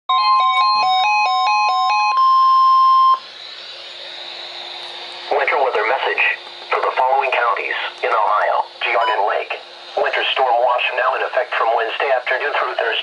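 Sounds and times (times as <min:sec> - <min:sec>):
two-note alarm beeps: 0:00.1 - 0:03.2
steady warning alarm tone: 0:00.1 - 0:13.0
synthesized voice speaking: 0:05.3 - 0:13.0.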